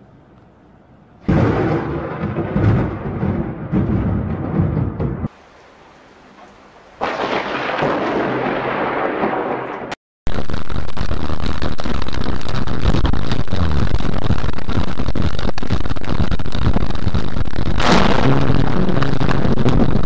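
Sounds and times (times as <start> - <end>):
thunder rumble: 1.2 - 20.0
crackling distorted roar: 7.0 - 20.0.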